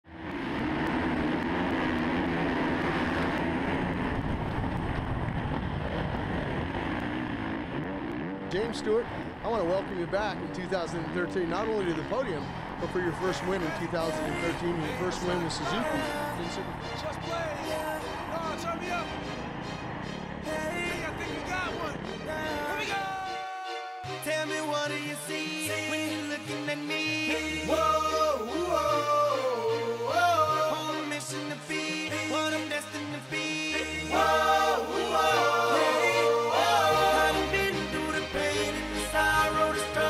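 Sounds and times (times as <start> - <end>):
motorcycle engine drone: 0.0 - 23.3
steady low rumble: 0.1 - 8.0
other motorcycles nearby: 0.1 - 23.1
indistinct voices: 8.6 - 19.2, 20.4 - 40.0
music: 10.6 - 40.0.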